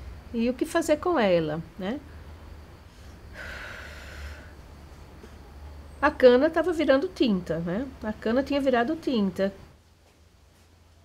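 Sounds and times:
faint low hum: 0:00.0 - 0:11.0
woman speaking: 0:00.3 - 0:02.1, 0:06.0 - 0:09.7
woman breathing in: 0:02.8 - 0:04.6.

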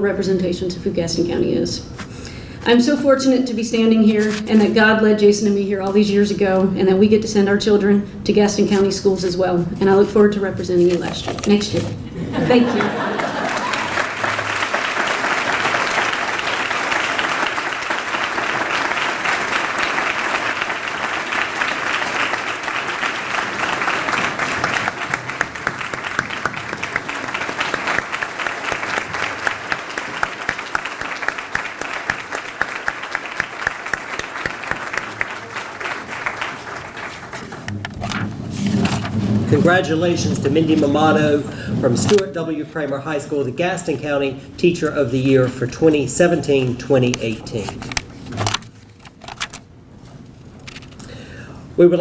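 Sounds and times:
large audience applauding: 0:12.5 - 0:37.9.

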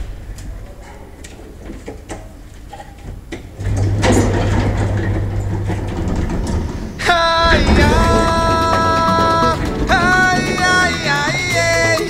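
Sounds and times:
elevator humming and rushing: 0:03.5 - 0:12.0.

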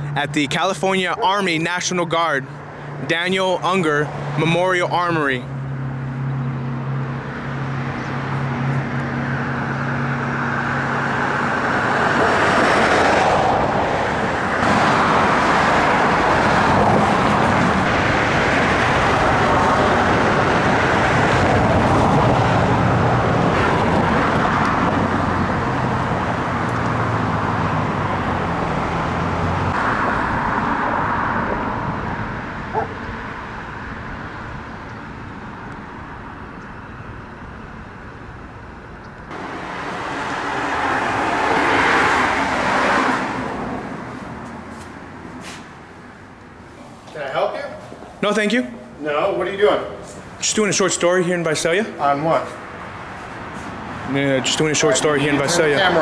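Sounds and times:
cars passing: 0:00.0 - 0:56.0.

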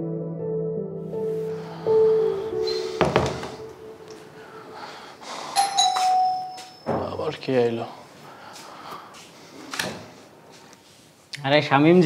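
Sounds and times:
doorbell chime: 0:05.6 - 0:07.1.

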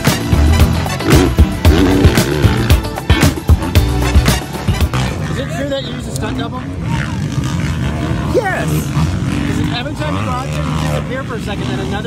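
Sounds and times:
dirt bike engines: 0:00.0 - 0:12.0
voices: 0:04.3 - 0:12.0.

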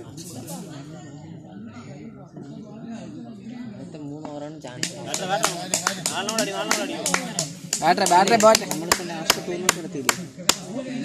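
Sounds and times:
men talking and calling out: 0:02.1 - 0:11.0.

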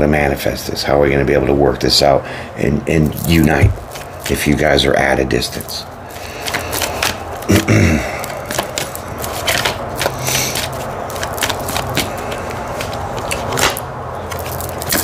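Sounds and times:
cards being shuffled: 0:03.0 - 0:04.7, 0:05.5 - 0:15.0
person clearing throat: 0:07.5 - 0:08.4.

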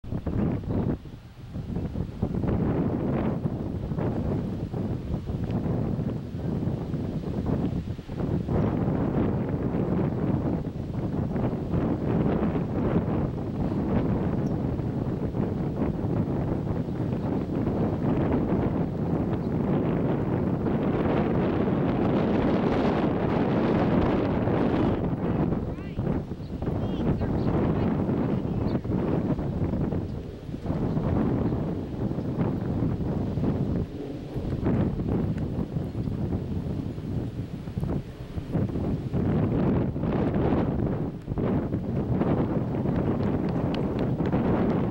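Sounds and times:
wind buffeting microphone: 0:00.0 - 0:44.9.

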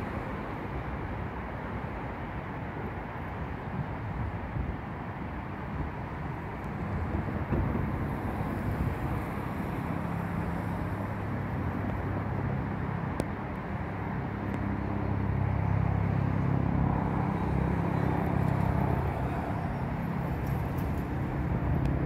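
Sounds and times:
vehicle engine humming: 0:05.3 - 0:22.0.

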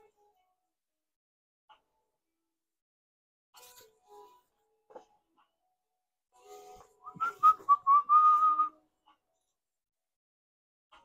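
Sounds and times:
person whistling a tune: 0:07.0 - 0:08.8.

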